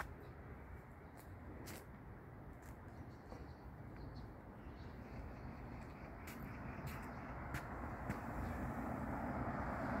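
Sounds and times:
passing car: 6.1s - 10.0s.

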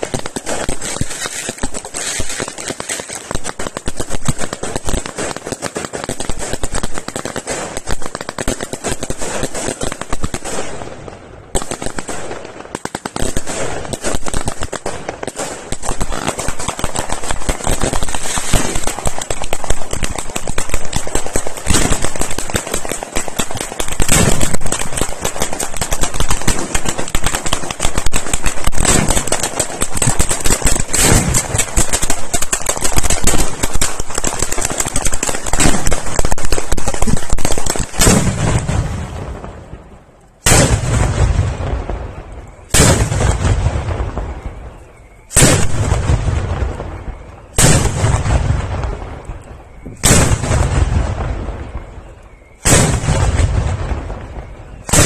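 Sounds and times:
fireworks bangs and crackles: 0.0s - 55.0s
heavy firework booms: 3.4s - 55.0s.

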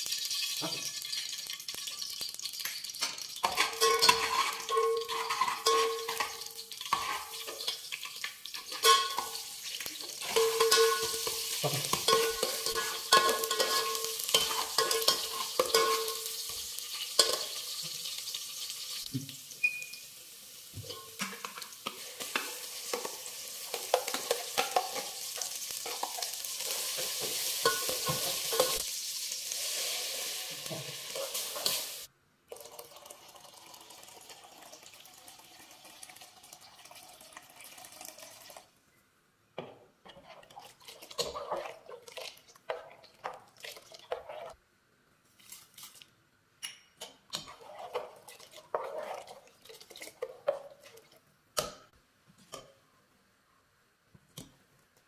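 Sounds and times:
food sizzling in hot oil: 0.0s - 32.1s
ladle clinking and scraping pot: 2.6s - 18.0s, 20.8s - 28.8s, 30.6s - 32.1s, 39.6s - 44.6s, 46.6s - 51.2s
faint hiss: 26.5s - 32.2s.

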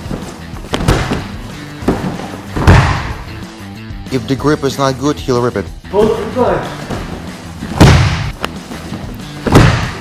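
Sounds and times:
bodies thudding on padded mat: 0.0s - 3.3s, 6.8s - 10.0s
background music: 0.0s - 10.0s.

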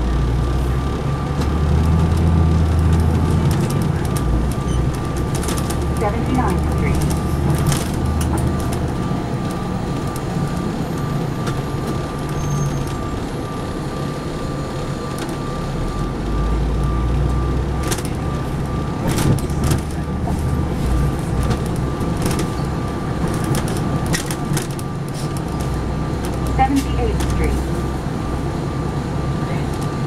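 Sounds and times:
bus engine and road rumble: 0.0s - 30.0s.

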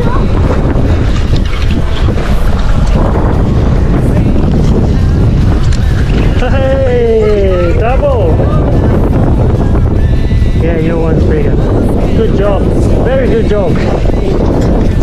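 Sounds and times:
strong wind buffeting microphone: 0.0s - 15.0s.

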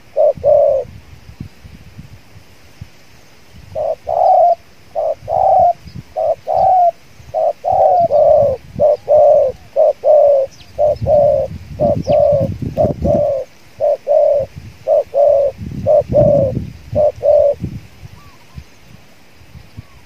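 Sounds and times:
doves cooing: 0.0s - 0.9s, 3.8s - 17.6s.

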